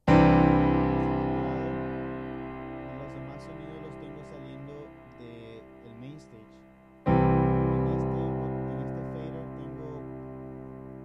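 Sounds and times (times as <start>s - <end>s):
digital piano chord: 0.0s - 11.0s.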